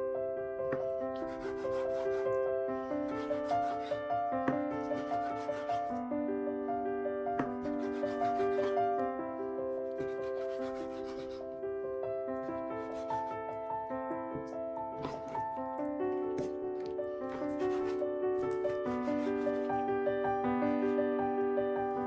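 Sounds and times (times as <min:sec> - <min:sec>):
piano background music: 0:00.0 - 0:22.0
knife slicing meat on wooden board: 0:00.7 - 0:06.0, 0:07.4 - 0:08.8, 0:09.8 - 0:11.5, 0:12.4 - 0:19.8.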